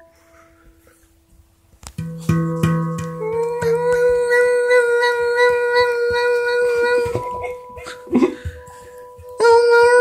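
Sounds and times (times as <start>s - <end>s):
handpan notes ringing: 2.0s - 4.4s.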